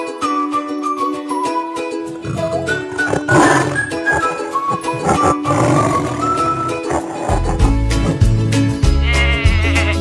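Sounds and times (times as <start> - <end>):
tiger roaring: 2.1 - 8.4.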